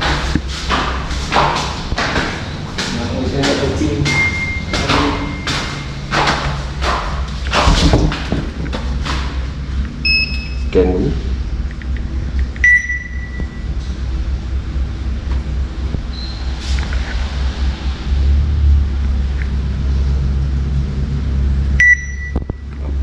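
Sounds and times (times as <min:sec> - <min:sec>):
steady low rumble: 0:00.0 - 0:23.0
short electronic beeps: 0:04.1 - 0:05.9, 0:10.0 - 0:10.7, 0:12.6 - 0:13.6, 0:21.8 - 0:22.6.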